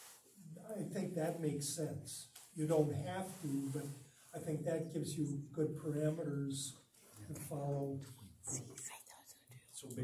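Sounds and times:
man speaking: 0.4s - 8.4s, 9.7s - 10.0s.

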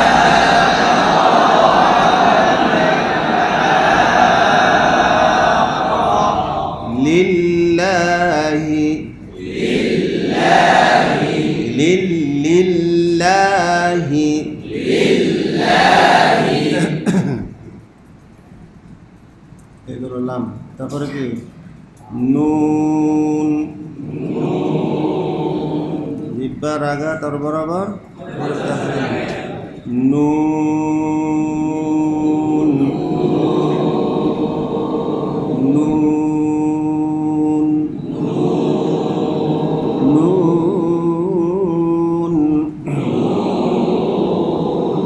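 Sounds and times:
man chanting recitation: 0.0s - 15.7s, 19.8s - 45.0s.

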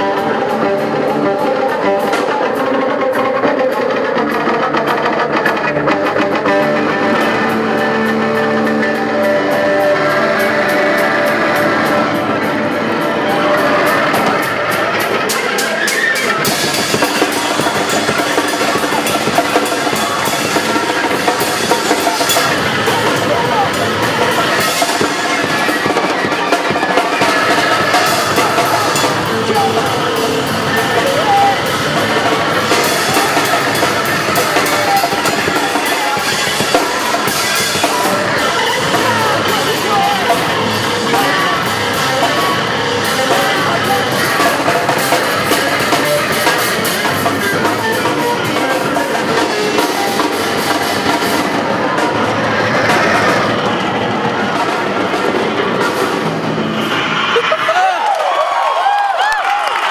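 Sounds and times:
drum kit: 0.0s - 59.9s
electric guitar: 0.0s - 59.9s
live rock band playing: 0.0s - 59.9s.

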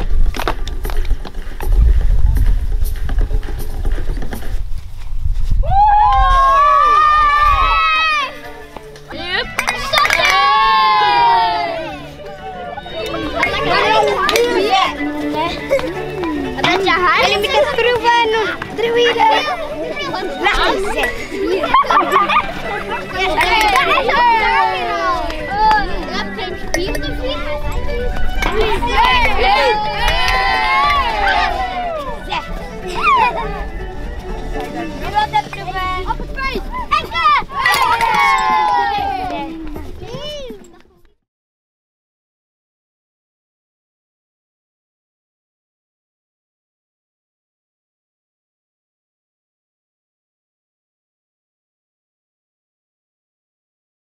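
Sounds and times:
children shouting: 5.6s - 40.6s.

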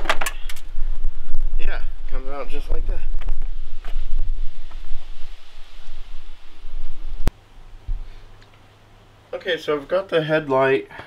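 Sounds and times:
wind rumbling on microphone: 0.0s - 8.0s.

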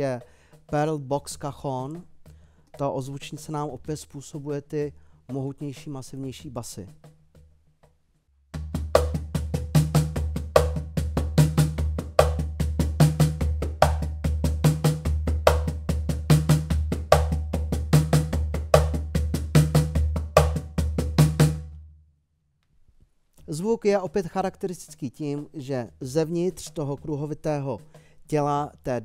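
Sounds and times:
hand drum groove with buzzy snare: 0.0s - 21.8s, 23.5s - 29.0s.

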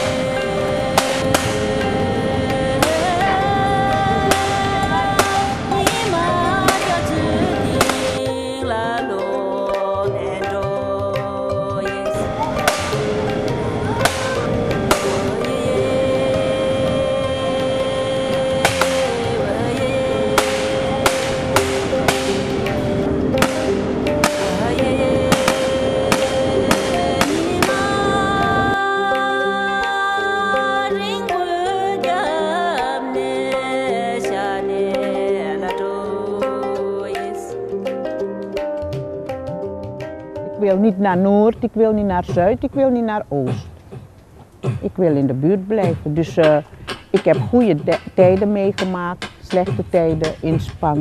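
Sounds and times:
background music with held tones: 0.0s - 51.0s.

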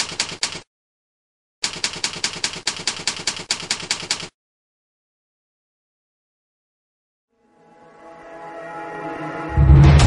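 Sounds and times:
rapid sharp clicks: 0.0s - 0.7s, 1.6s - 4.4s.

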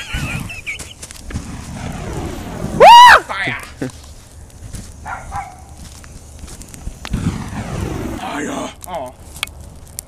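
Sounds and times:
bonfire crackling and popping: 0.0s - 10.0s.

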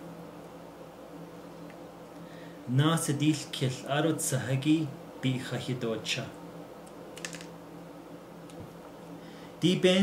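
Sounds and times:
steady low hum: 0.0s - 10.0s
small plastic clicks: 7.2s - 7.5s.

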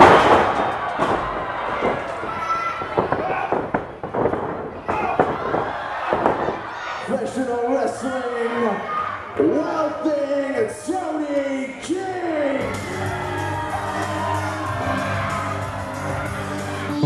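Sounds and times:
body slam on ring mat: 0.0s - 6.7s
crowd shouting: 0.0s - 7.3s, 12.6s - 17.0s.

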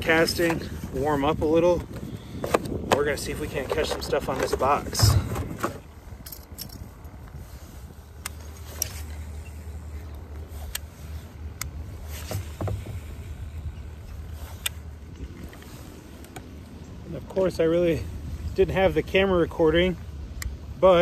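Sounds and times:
low steady rumble: 0.0s - 21.0s.

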